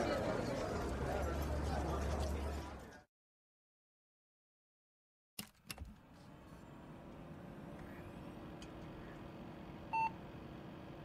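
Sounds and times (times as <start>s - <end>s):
steady low hum: 6.0s - 11.0s.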